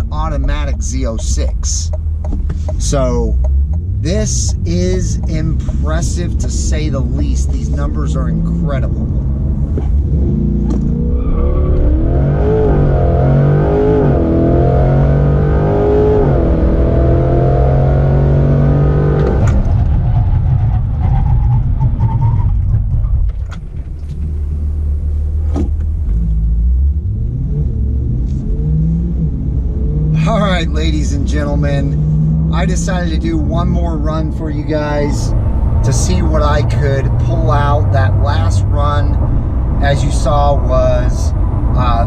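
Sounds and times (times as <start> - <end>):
car engine accelerating with upshifts: 0.0 - 42.0
road noise: 0.0 - 42.0.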